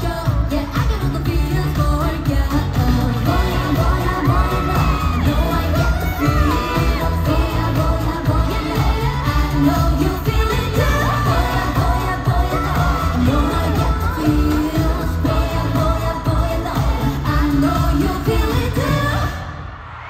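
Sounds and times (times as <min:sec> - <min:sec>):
pop backing track with heavy beat: 0:00.0 - 0:19.7
women singing: 0:00.0 - 0:20.0.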